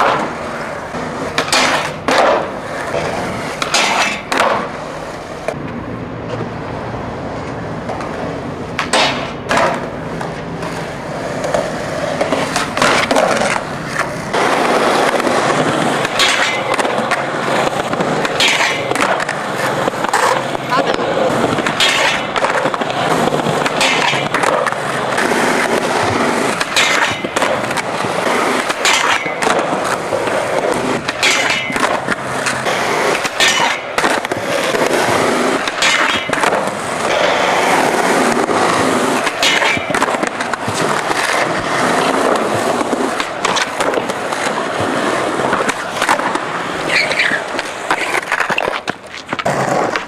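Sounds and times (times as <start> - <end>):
skateboard clacking on ground: 0.0 - 6.6, 7.2 - 50.0
skateboard wheels rolling on concrete: 0.0 - 50.0.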